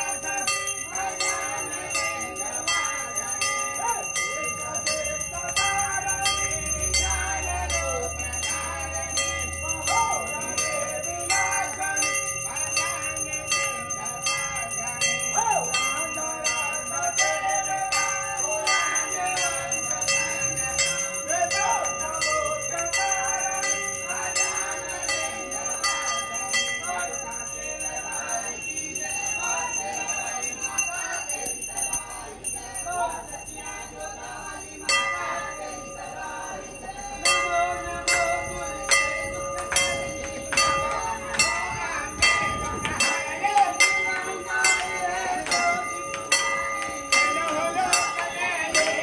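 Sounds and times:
brass bell ringing: 0.0s - 49.0s
people singing: 0.0s - 49.0s.

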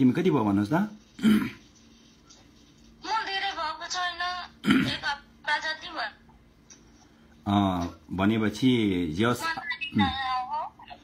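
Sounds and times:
faint steady hum: 0.0s - 11.0s
person clearing throat: 1.2s - 1.6s, 4.6s - 5.0s.

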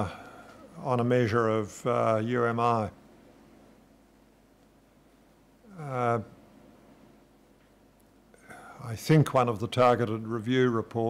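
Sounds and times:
man speaking: 0.0s - 3.0s, 5.7s - 6.4s, 8.7s - 11.0s.

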